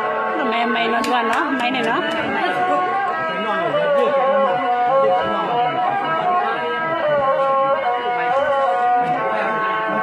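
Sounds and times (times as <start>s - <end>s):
voices chattering: 0.4s - 10.0s.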